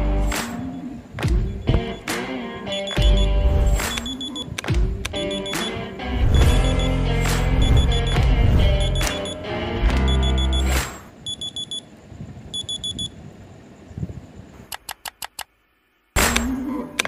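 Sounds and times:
bass-heavy music: 0.0s - 10.9s
phone alarm beeping: 0.6s - 2.1s, 2.7s - 4.6s, 5.2s - 5.8s, 6.4s - 9.4s, 10.0s - 11.9s, 12.5s - 13.2s
sharp clicks: 1.2s - 5.8s, 8.8s - 11.0s, 14.7s - 15.5s, 16.2s - 17.0s.

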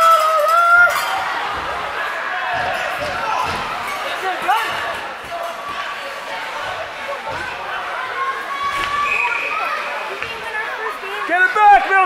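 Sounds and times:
voices echoing in arena: 0.0s - 12.0s.

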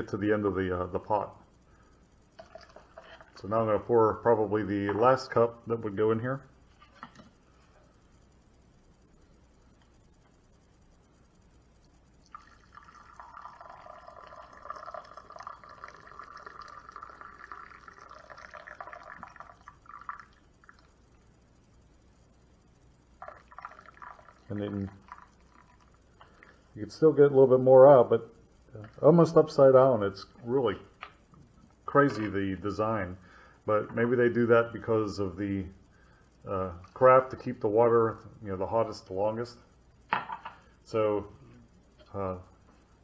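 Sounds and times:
water pouring into a mug: 2.4s - 3.5s, 12.2s - 21.1s, 23.2s - 26.8s.

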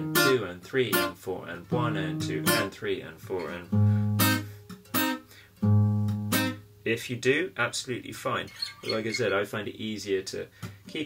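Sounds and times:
fingerpicked acoustic guitar: 0.0s - 6.7s.

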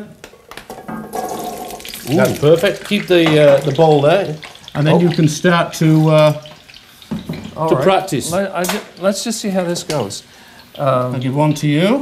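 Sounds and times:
potato balls tumbling into oil: 0.2s - 9.2s.

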